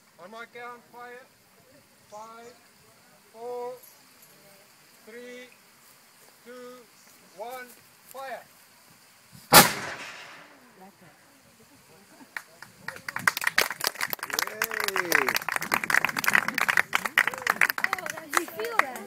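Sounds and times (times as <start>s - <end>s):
cannon blast with echo: 9.5s - 10.6s.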